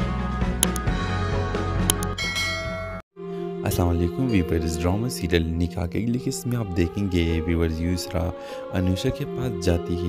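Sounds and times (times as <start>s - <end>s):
button click: 0.6s - 0.9s, 1.9s - 2.2s
ringing bell chime: 2.2s - 3.0s.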